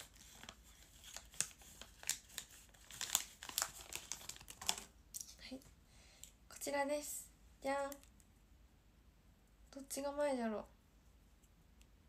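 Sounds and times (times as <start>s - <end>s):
plastic tearing: 0.0s - 4.9s
plastic wrapping crinkling: 0.0s - 5.3s.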